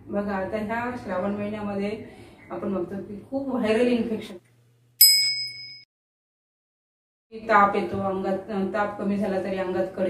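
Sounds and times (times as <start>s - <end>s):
bright bell-like ding: 5.0s - 5.9s.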